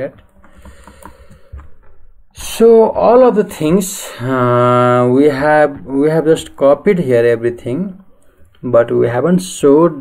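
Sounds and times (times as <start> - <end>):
mouse scroll wheel ticking: 0.2 - 1.7.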